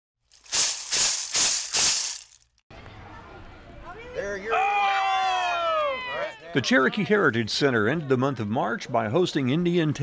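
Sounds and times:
rattle shaking: 0:00.3 - 0:02.6.

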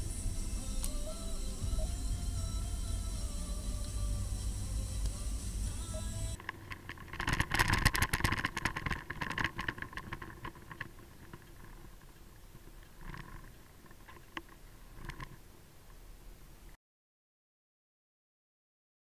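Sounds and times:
background music: 0:00.0 - 0:06.4
low road rumble: 0:00.0 - 0:16.8
clicks and rattles: 0:06.4 - 0:15.4.

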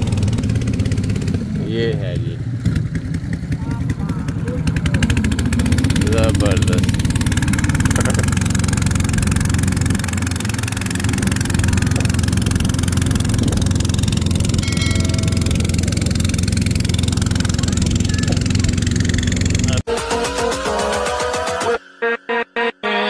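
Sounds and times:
outboard motor running: 0:00.0 - 0:21.4
electronic music: 0:19.7 - 0:23.0.

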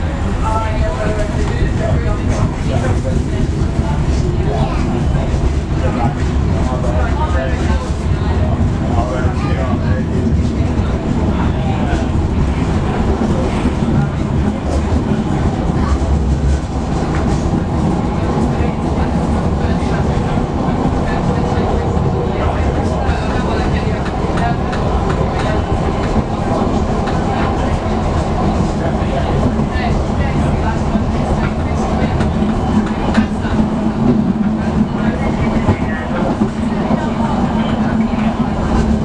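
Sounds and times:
train wheels rumbling on rails: 0:00.0 - 0:39.0.

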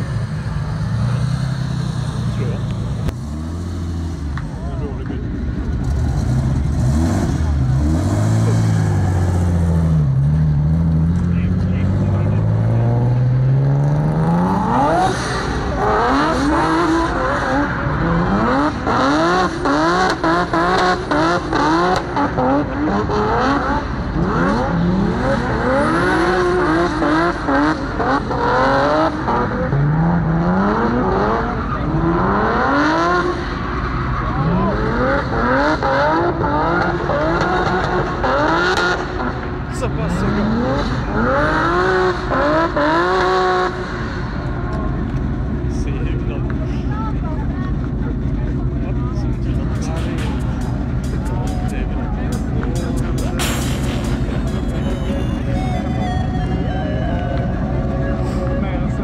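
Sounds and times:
car engine revving hard: 0:05.6 - 0:46.9, 0:47.7 - 0:55.6.

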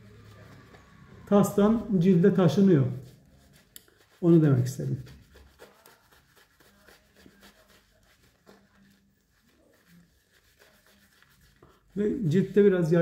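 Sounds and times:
shaving brush rubbing lather: 0:00.0 - 0:13.0.

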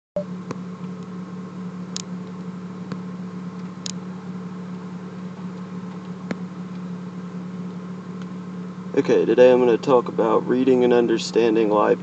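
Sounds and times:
car engine idling: 0:00.2 - 0:12.0.

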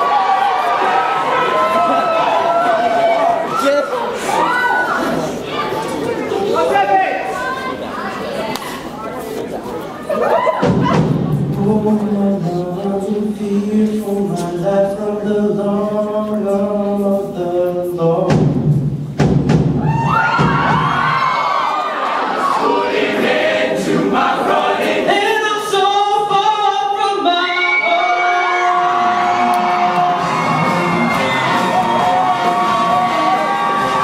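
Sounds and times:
audience cheering and whooping: 0:00.0 - 0:05.1, 0:10.1 - 0:11.0, 0:19.8 - 0:22.8, 0:27.5 - 0:34.0
choir singing: 0:22.0 - 0:25.4.

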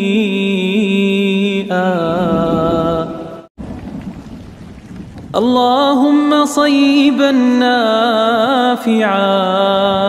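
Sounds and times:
person singing a prayer: 0:00.0 - 0:03.5, 0:05.4 - 0:10.0.

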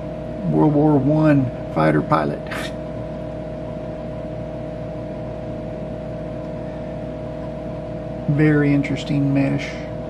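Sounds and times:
computer hum and fan noise: 0:00.0 - 0:10.0.

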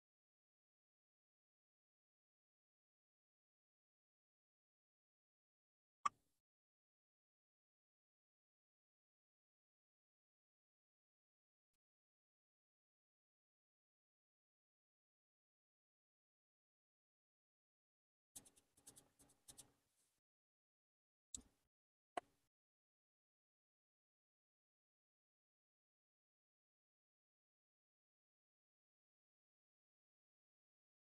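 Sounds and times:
faint scratchy tool tapping: 0:18.4 - 0:20.1.

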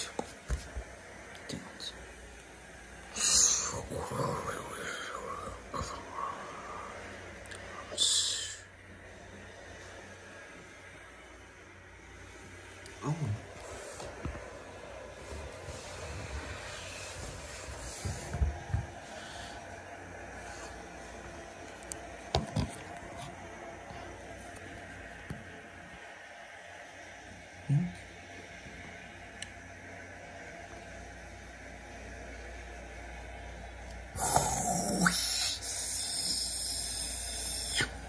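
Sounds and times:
steady background noise: 0:00.0 - 0:38.0
breathy vocal hiss: 0:03.0 - 0:08.8, 0:19.0 - 0:21.2, 0:34.1 - 0:38.0
growl-like vocal sound: 0:34.2 - 0:36.4.

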